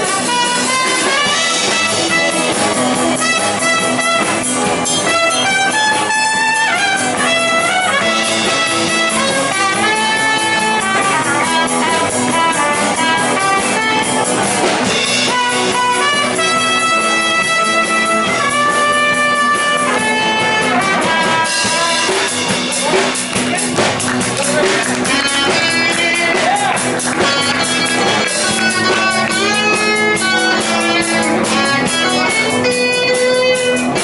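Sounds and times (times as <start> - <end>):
lead guitar sliding notes: 0.0 - 23.9, 24.6 - 34.0
bass: 0.0 - 34.0
drum kit: 0.0 - 34.0
rhythm guitar: 0.0 - 34.0.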